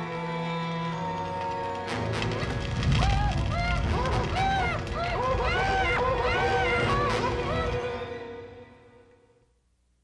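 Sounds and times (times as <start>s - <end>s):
muffled panicked cries: 3.1s - 8.2s.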